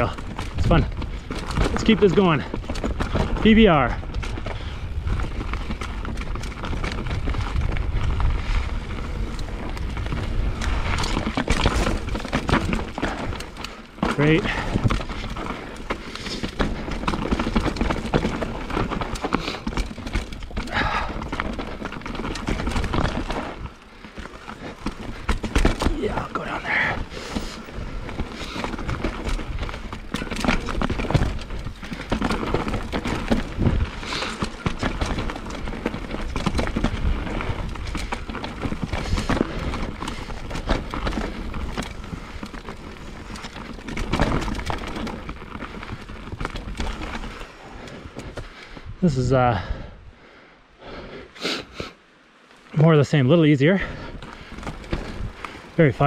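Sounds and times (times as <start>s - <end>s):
bike knocking over bumps: 0.0s - 8.1s, 9.5s - 47.5s
bike tyres rumbling over dirt: 0.0s - 56.0s.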